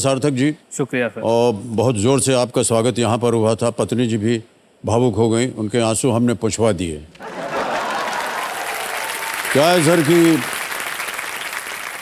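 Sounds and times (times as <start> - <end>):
audience laughter: 7.2 - 9.0
studio audience applauding: 7.2 - 12.0.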